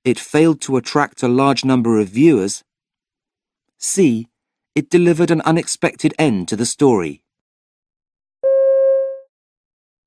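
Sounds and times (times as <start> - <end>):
electronic beep: 8.4 - 9.3.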